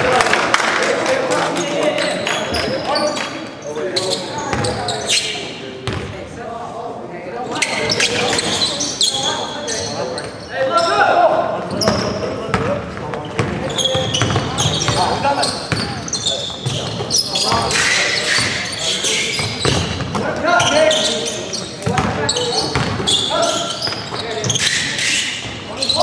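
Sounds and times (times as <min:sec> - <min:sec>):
players' voices echoing: 0:00.0 - 0:26.0
sneakers squeaking: 0:01.8 - 0:06.2, 0:07.4 - 0:26.0.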